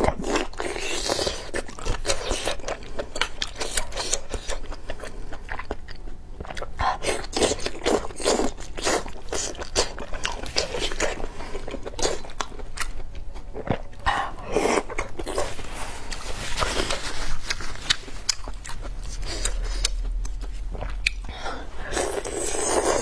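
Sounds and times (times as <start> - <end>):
person chewing and biting: 0.0 - 23.0.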